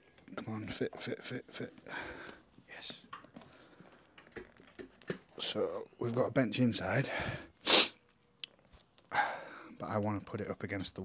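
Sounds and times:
man huffing breath: 1.5s - 2.5s.

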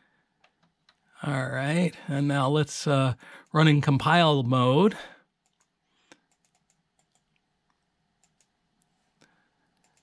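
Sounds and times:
computer keys clicking: 5.4s - 7.4s, 8.2s - 8.6s, 9.8s - 10.0s.

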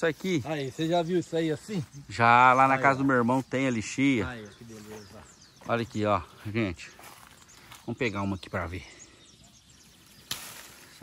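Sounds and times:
leaves and twigs rustling: 0.0s - 11.0s
fruit stem snapping: 10.1s - 10.8s.

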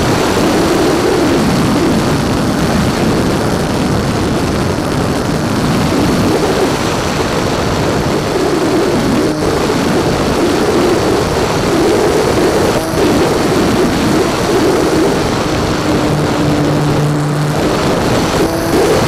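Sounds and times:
electric motor and propeller whine: 0.0s - 19.0s
wind rush: 0.0s - 19.0s.

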